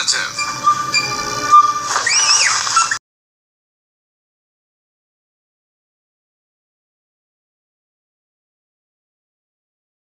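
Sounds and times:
background music with held tones: 0.0 - 3.0
high-pitched squeal: 0.0 - 3.0.

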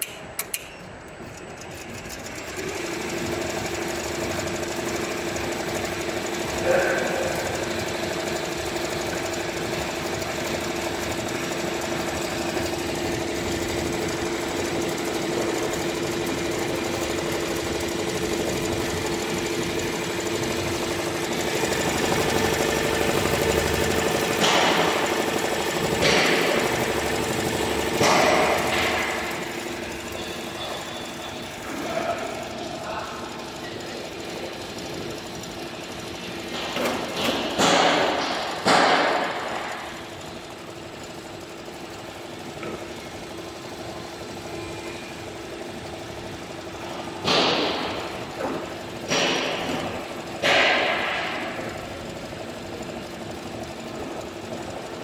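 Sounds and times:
embroidery machine stitching: 1.2 - 55.0
loud clacks: 9.1 - 30.9, 36.4 - 40.3, 46.8 - 54.9.

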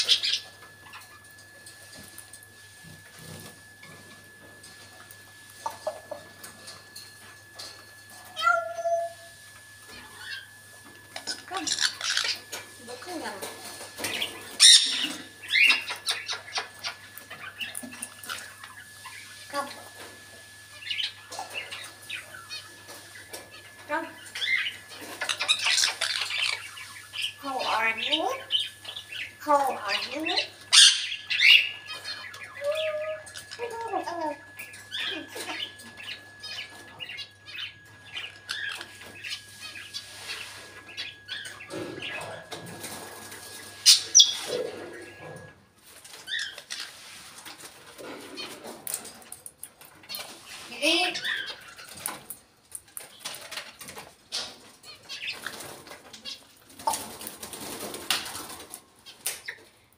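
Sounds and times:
parrot squawking and whistling: 8.3 - 9.4, 11.2 - 12.5, 14.6 - 16.6, 29.8 - 37.6.

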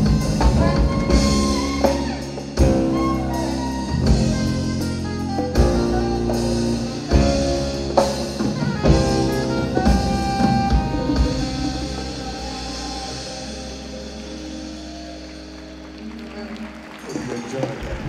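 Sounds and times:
jazz-funk band playing: 0.0 - 18.0.

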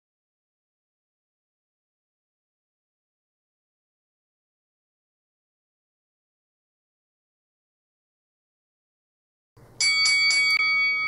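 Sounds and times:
boxing ring bell ringing: 9.8 - 11.0.

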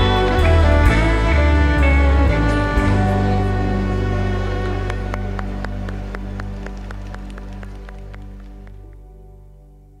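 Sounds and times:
band chord ringing: 0.0 - 6.0
hand claps: 4.8 - 9.0.

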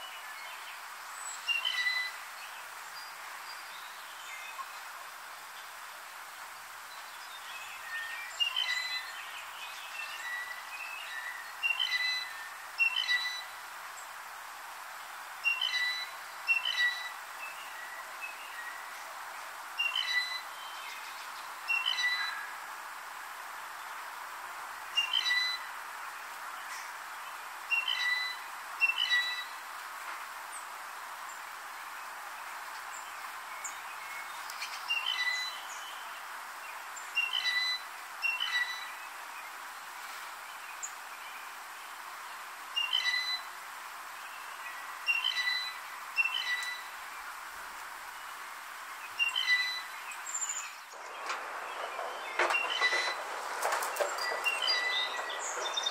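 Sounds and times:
background hiss: 0.0 - 55.9.

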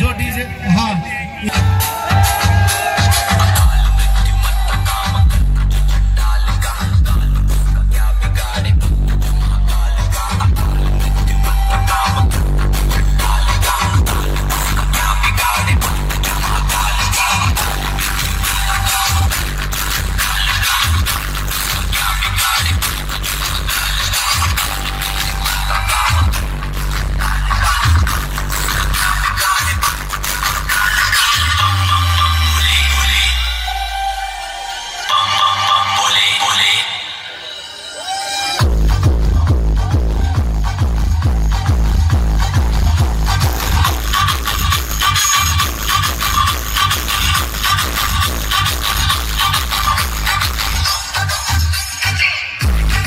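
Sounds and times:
loud dance music with heavy bass: 0.0 - 53.0.

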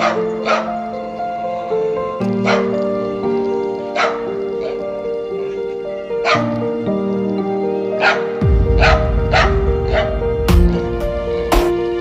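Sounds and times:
dog barking: 0.0 - 0.9, 2.3 - 2.8, 3.8 - 6.6, 8.0 - 10.2
background music: 0.0 - 12.0.

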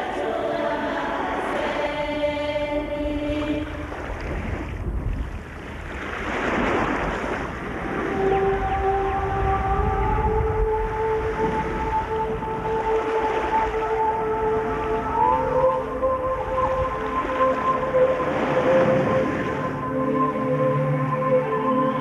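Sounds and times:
long held gliding tones: 0.0 - 4.2, 7.7 - 22.0
ocean surf: 0.0 - 22.0.

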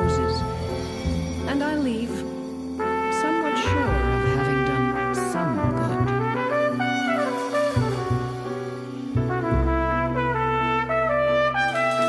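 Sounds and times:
jazz ensemble playing: 0.0 - 12.0
trumpet melody: 0.0 - 12.0
steady bass line: 3.7 - 11.2.

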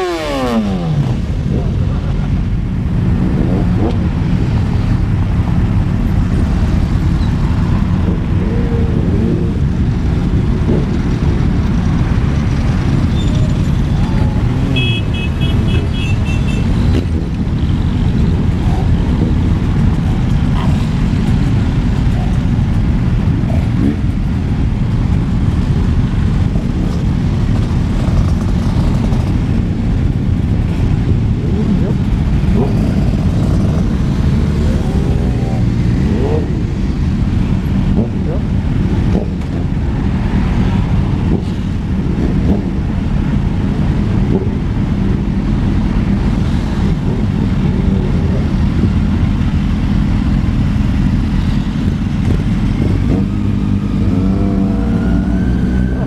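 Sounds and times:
motorcycle engines rumbling: 0.0 - 56.0.

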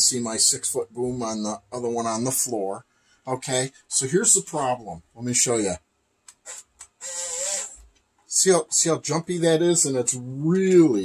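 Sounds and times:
electric motor whirring in pulses: 6.5 - 7.8.

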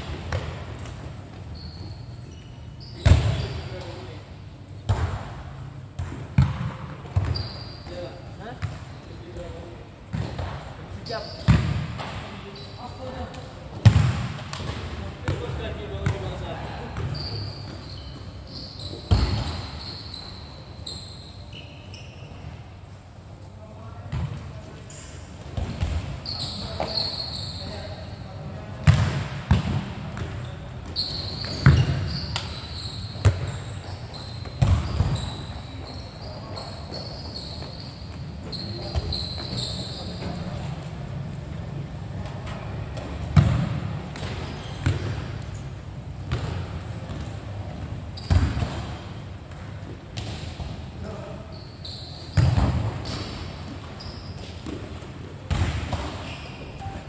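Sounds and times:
shoe squeaks: 0.1 - 4.3, 7.0 - 9.7, 10.9 - 11.6, 12.4 - 13.5, 15.8 - 23.0, 24.6 - 28.6, 30.2 - 41.2, 44.2 - 49.2, 50.4 - 55.0, 56.1 - 57.0.

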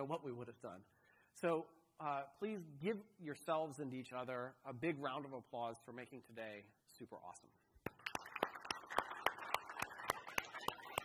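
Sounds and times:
audience applauding: 7.8 - 11.0
louder hand claps: 7.8 - 11.0.

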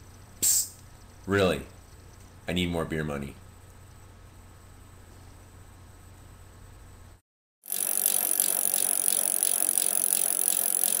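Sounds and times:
bicycle mechanical rattle: 7.6 - 11.0
faint regular ticks: 7.7 - 11.0.

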